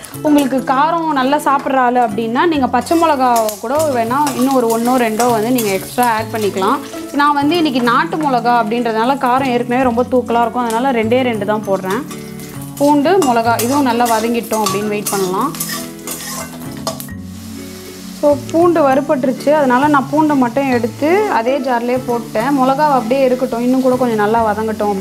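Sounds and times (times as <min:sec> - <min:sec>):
garlic sizzling in oil: 0:00.0 - 0:25.0
sung melody: 0:02.6 - 0:25.0
spatula stirring in metal pan: 0:02.9 - 0:08.4, 0:11.8 - 0:17.1.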